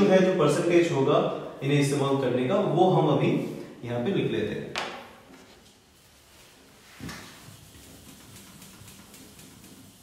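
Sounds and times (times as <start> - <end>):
eraser rubbing whiteboard: 6.9 - 10.0.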